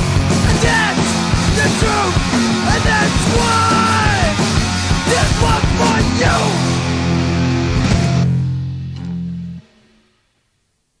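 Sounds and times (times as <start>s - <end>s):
heavy band with distorted guitar: 0.0s - 9.8s.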